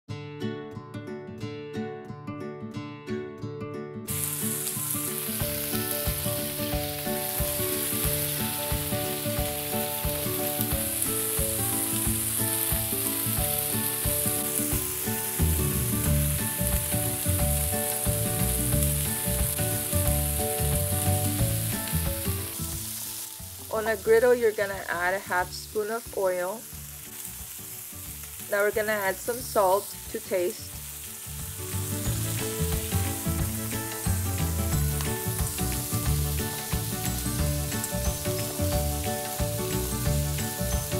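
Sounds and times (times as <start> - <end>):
background music: 0.1 - 40.9
tomatoes sizzling on a griddle: 4.1 - 40.9.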